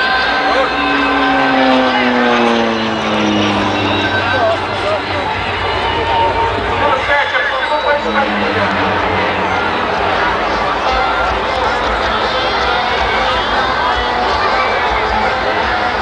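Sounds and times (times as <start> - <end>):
another propeller drone: 0.0 - 13.9
propeller plane flying past: 0.0 - 16.0.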